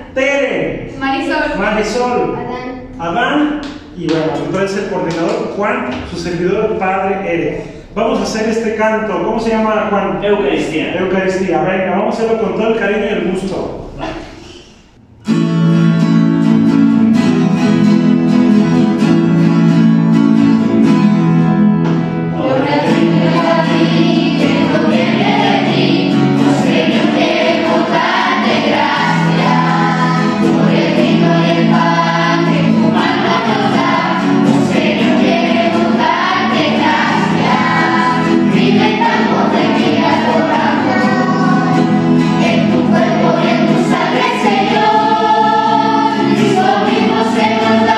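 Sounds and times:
acoustic guitars strumming: 0:13.2 - 0:47.9
children's choir singing: 0:21.9 - 0:47.9.

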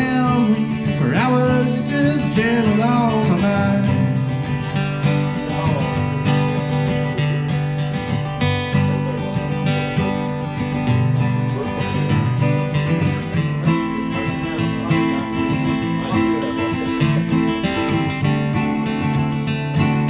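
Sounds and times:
acoustic guitars strumming: 0:00.0 - 0:20.0.

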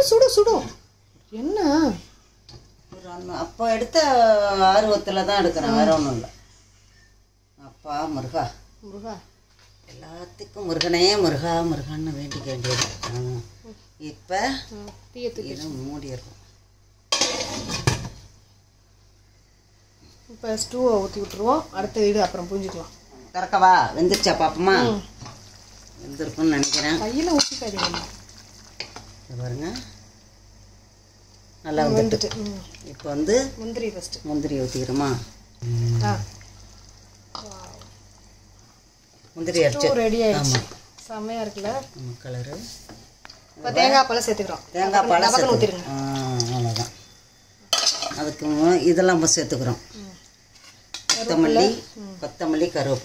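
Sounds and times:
woman speaking: 0:02.9 - 0:06.3, 0:20.3 - 0:25.1, 0:26.0 - 0:28.1, 0:31.6 - 0:35.2, 0:39.4 - 0:42.6, 0:43.6 - 0:46.9, 0:51.2 - 0:53.0
liquid pouring into pan: 0:35.9 - 0:38.7.

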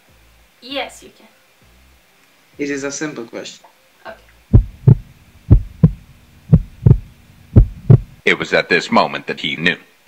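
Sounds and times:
heartbeat thumps: 0:04.5 - 0:08.2
low hum: 0:04.5 - 0:08.2.

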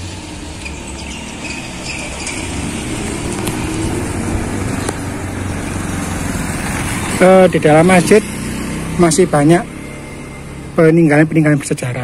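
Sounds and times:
motor scooter passing: 0:00.0 - 0:12.0.

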